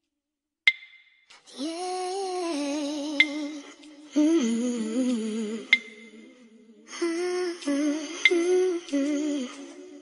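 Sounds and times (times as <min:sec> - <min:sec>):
soft wordless humming: 0:01.5 - 0:10.0.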